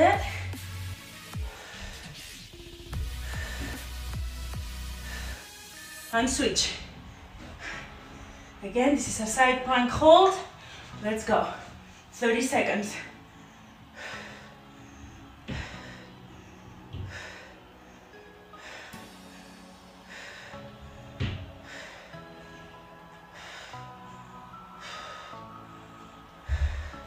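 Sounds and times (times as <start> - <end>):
quiet background music: 0.0 - 27.0
woman breathing forcefully: 0.2 - 9.0, 10.3 - 12.2, 12.8 - 27.0.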